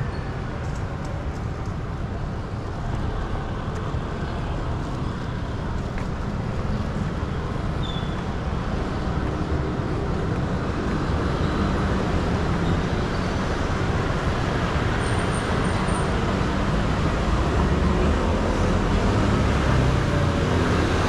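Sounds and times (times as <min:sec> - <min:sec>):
road traffic hum: 0:00.0 - 0:21.0.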